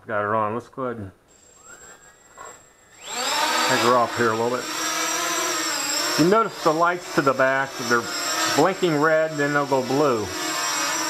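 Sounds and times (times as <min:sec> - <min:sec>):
quadcopter motors whining: 0:01.3 - 0:11.0.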